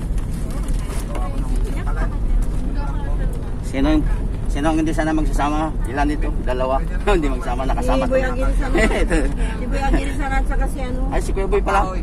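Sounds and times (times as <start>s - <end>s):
faint passenger voices: 0.0s - 12.0s
van engine and road rumble: 0.0s - 12.0s
woman speaking: 7.8s - 9.0s, 9.6s - 11.1s.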